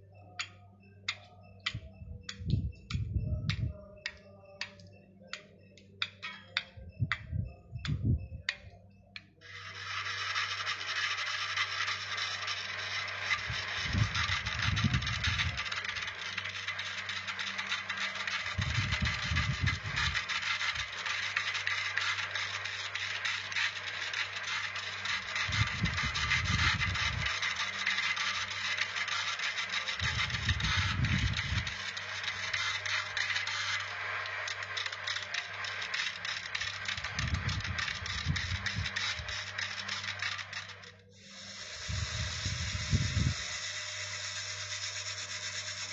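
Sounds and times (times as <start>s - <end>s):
low rumbles: 1.6s - 4.2s
lathe motor hum: 9.4s - 45.9s
turning tool scraping wood: 9.4s - 45.9s.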